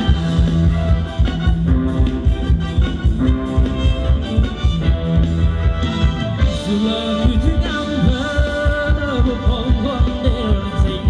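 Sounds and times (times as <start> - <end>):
live band dance music: 0.0 - 11.0.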